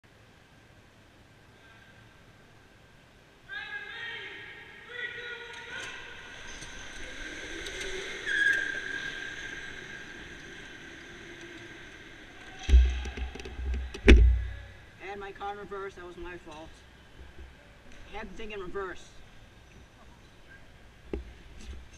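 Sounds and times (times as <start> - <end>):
karts bumping: 5.6 - 14.8
electric go-kart motors whining: 6.2 - 12.7.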